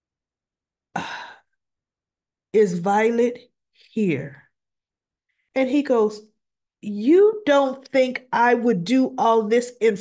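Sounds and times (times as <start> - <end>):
woman's breathy sigh: 0.9 - 1.6.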